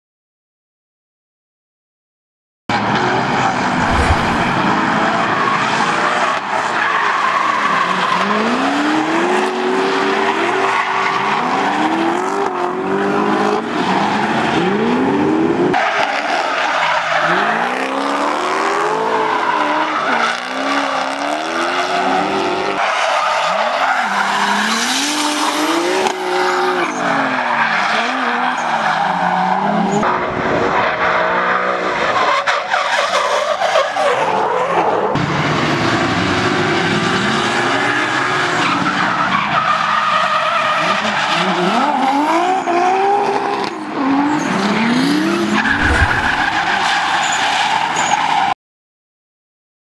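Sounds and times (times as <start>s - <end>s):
tyres screeching on asphalt: 15.7s - 30.0s, 44.2s - 48.5s
car engines revving: 41.4s - 47.3s.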